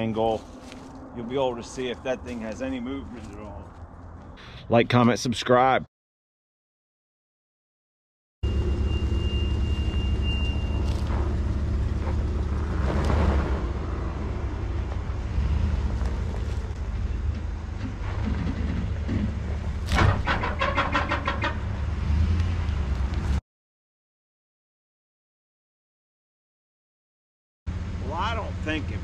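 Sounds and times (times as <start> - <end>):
truck engine straining: 8.4 - 23.4.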